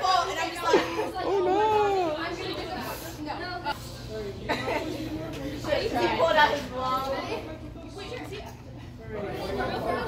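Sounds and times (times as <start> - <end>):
young people chattering: 0.0 - 10.0.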